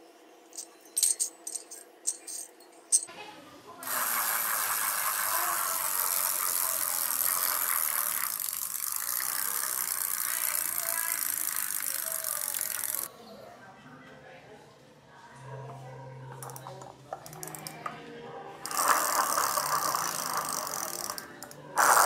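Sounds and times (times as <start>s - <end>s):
wheel spinning with rattling whir: 3.8s - 13.1s, 18.6s - 22.0s.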